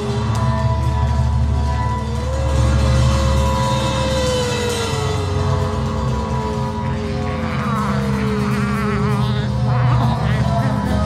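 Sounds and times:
heavy low drone: 0.0s - 11.0s.

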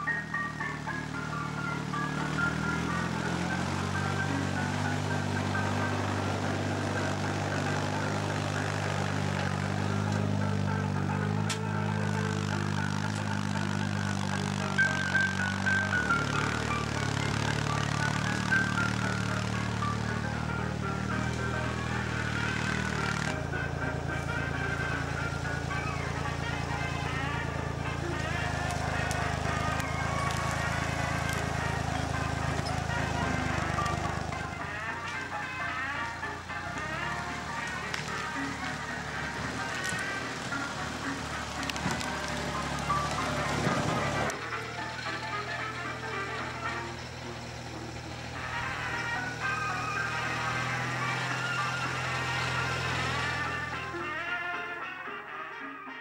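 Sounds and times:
diesel engine running: 0.0s - 54.8s
background music: 0.0s - 56.0s.

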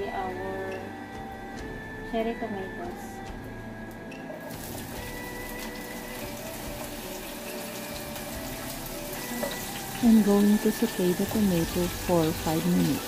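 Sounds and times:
tomatoes sizzling in oil: 4.5s - 13.0s.

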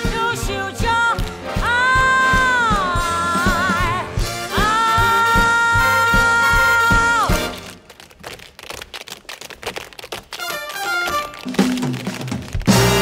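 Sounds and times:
swing band playing: 0.0s - 7.8s, 10.3s - 13.0s
tap-dance steps on stage floor: 4.2s - 13.0s.

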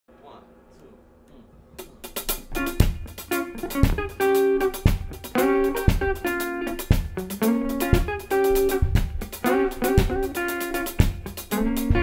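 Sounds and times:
drum kit: 1.8s - 12.0s
electric guitar chords: 2.0s - 12.0s
heavy low drum hits: 8.7s - 9.4s.

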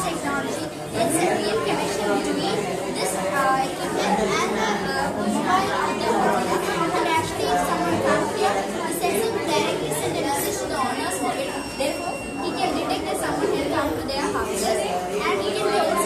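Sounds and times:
many voices chattering: 0.0s - 16.0s.

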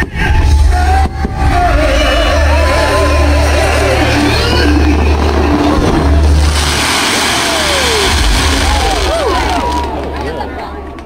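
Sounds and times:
crowd voices: 0.0s - 11.0s
fireworks bursts rumbling: 3.5s - 11.0s
fireworks crackling hiss: 4.4s - 9.9s.

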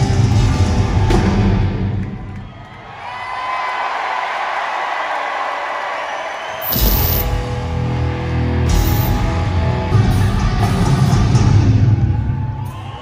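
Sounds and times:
heavy rock band playing: 0.0s - 1.9s, 6.7s - 12.4s
crowd cheering and whooping: 0.7s - 8.1s, 8.8s - 13.0s.

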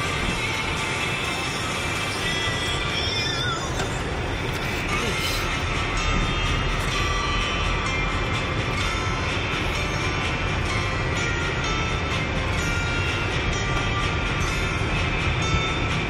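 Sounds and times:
engine and tyre rumble: 0.0s - 16.0s
music from car radio: 0.0s - 16.0s.

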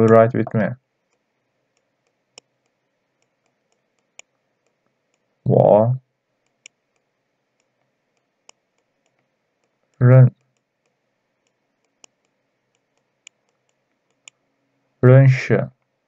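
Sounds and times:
person speaking syllable: 0.0s - 0.8s, 5.5s - 6.0s, 10.0s - 10.3s, 15.0s - 15.7s
faint clicks of pointing device: 1.1s - 5.3s, 6.4s - 14.4s.

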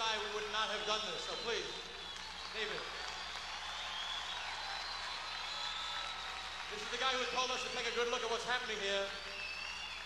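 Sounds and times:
crowd applauding and cheering: 0.7s - 10.0s.

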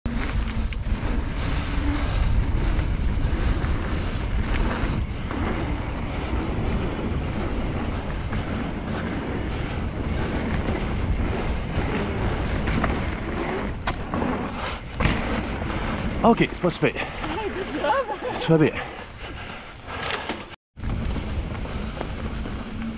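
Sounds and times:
wind noise on microphone: 0.0s - 22.9s
bike rattling over bumps: 0.1s - 22.9s
bike tyres rolling on gravel: 0.1s - 22.9s.

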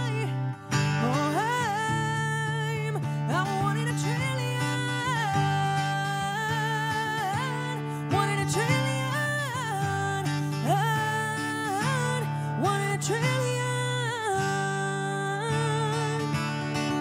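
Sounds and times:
strummed acoustic guitar: 0.0s - 17.0s
woman singing: 0.0s - 17.0s.

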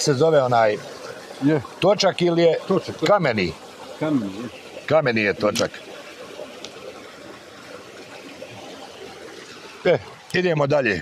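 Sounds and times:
stream trickling over stones: 0.0s - 11.0s.

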